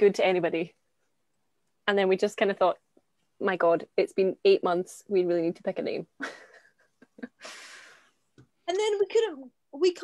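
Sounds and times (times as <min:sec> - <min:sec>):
woman laughing breathily: 0:06.2 - 0:08.0.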